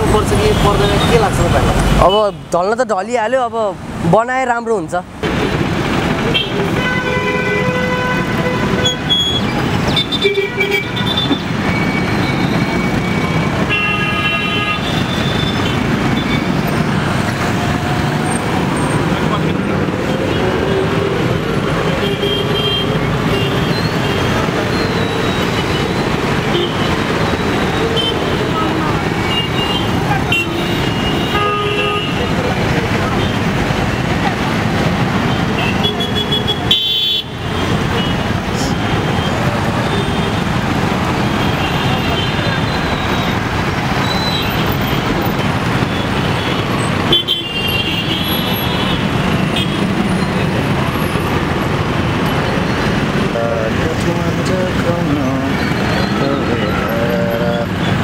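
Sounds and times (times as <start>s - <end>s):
vehicle horns tooting: 6.3s - 16.7s, 21.9s - 32.4s, 35.2s - 40.5s, 41.2s - 43.4s, 44.0s - 50.5s
voices: 52.3s - 58.0s.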